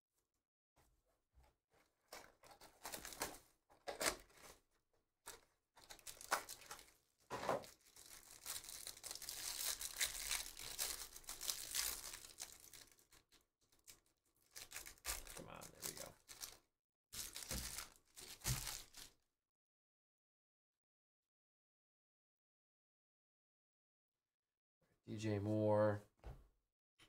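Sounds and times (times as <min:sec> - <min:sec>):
wrapper tearing and crinkling: 0:02.4 - 0:04.5, 0:05.3 - 0:16.6, 0:17.2 - 0:19.1.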